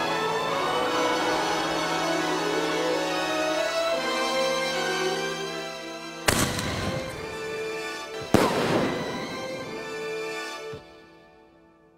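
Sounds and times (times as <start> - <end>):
background music: 0.0 - 11.9
firework bangs: 6.3 - 7.4, 8.2 - 10.1.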